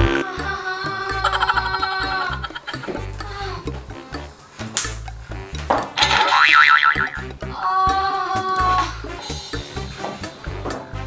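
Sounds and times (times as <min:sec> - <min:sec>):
background music: 0:00.0 - 0:11.0
cartoon boing sound effect: 0:06.0 - 0:07.3.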